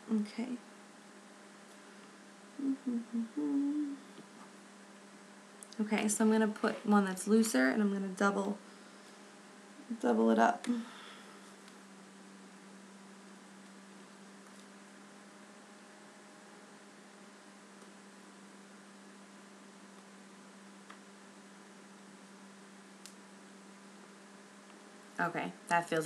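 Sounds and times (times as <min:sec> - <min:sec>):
low electrical hum: 0:00.0 - 0:26.0
faint hiss: 0:01.6 - 0:04.4.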